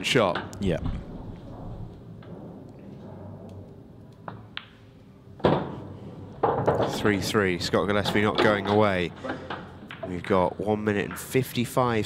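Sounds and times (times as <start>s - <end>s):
pool balls clicking together: 6.3s - 7.2s, 7.8s - 11.3s.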